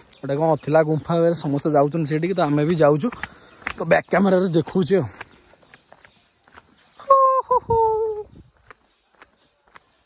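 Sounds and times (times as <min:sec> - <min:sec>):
faint footsteps on path: 0:00.0 - 0:10.0.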